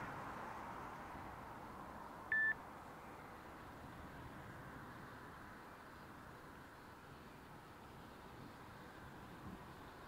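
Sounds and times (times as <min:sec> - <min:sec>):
faint background noise: 0:00.0 - 0:10.0
short electronic beep: 0:02.3 - 0:02.6.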